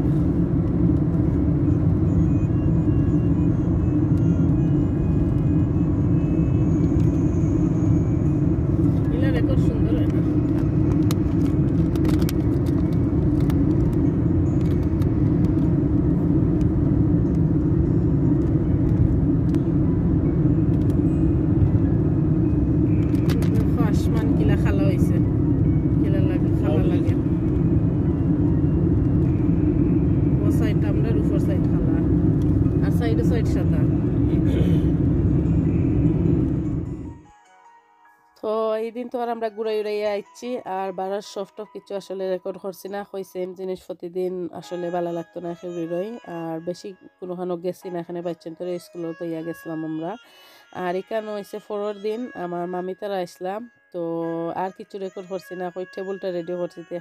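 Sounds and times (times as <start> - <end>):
car cabin road and engine drone: 0.0 - 37.5.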